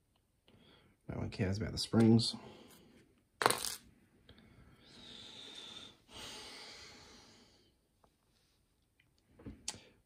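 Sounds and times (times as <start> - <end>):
soft breathing: 4.1 - 8.6.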